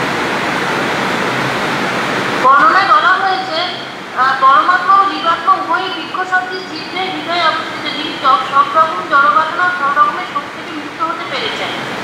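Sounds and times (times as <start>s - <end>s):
person speaking: 2.4s - 11.9s.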